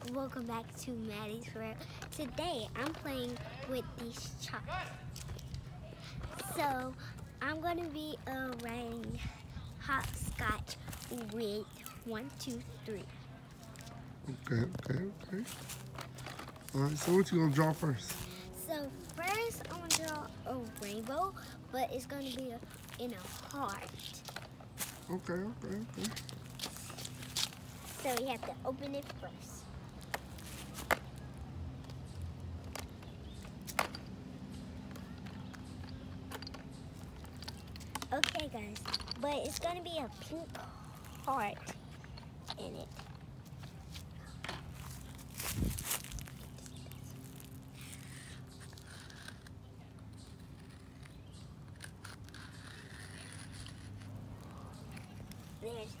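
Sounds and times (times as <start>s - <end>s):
footsteps in sandals on pavement: 0.0s - 56.0s
chalk scraping on concrete: 51.7s - 55.1s.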